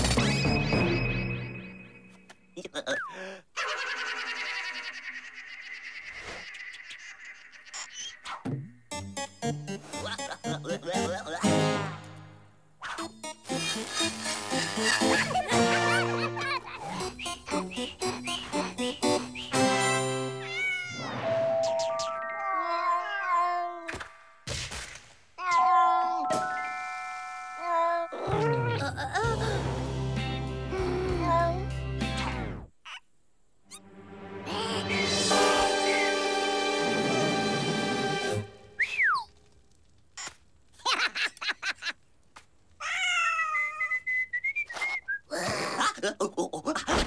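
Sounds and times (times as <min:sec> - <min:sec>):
cartoon cat voice: 0:21.9 - 0:23.9, 0:25.4 - 0:29.2
cartoon cat meow-like voice: 0:22.0 - 0:23.9, 0:25.4 - 0:26.9, 0:42.8 - 0:43.9.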